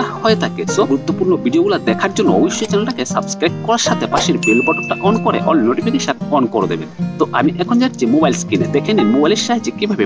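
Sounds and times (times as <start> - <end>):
background music: 0.0 - 10.0
man speaking: 0.0 - 10.0
high bell-like ding: 4.2 - 5.5.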